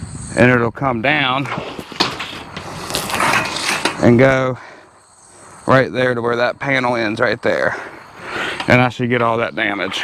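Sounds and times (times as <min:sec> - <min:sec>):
metal panel scraping and clicking: 0:01.4 - 0:04.4.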